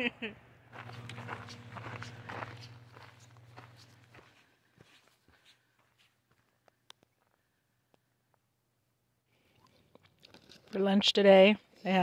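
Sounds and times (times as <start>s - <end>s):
steady low hum: 0.0s - 6.7s
footsteps on gravel: 0.7s - 6.5s.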